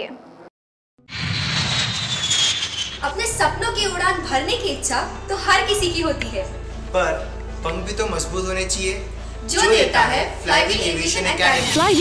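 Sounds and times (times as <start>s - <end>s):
jet engine roar and whine: 1.1s - 3.0s.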